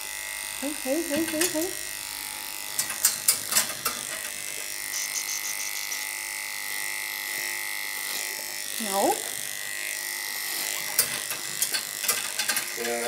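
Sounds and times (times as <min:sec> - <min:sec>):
electric clipper humming: 0:00.0 - 0:13.0
sharp clicks and knocks: 0:02.7 - 0:04.4.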